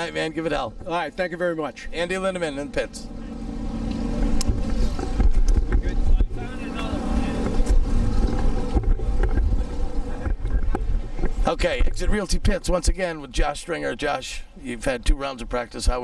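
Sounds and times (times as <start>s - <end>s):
truck engine rumbling: 0.0s - 16.0s.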